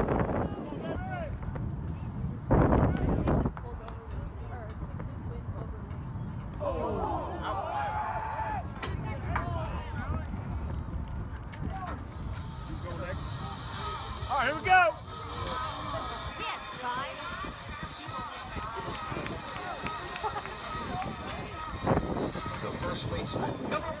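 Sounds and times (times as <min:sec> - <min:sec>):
faint voices in stands: 0:02.8 - 0:24.0.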